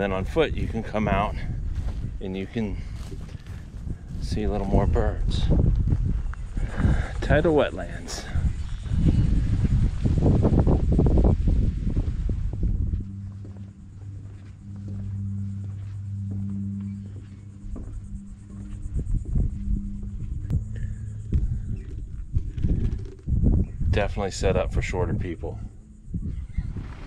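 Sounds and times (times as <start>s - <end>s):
steady low hum: 0.0s - 27.0s
wind on microphone: 0.0s - 27.0s.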